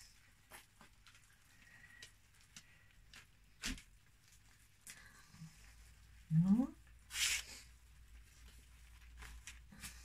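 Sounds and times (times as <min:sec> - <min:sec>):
wet squishes of kneaded cloth: 0:00.0 - 0:10.0.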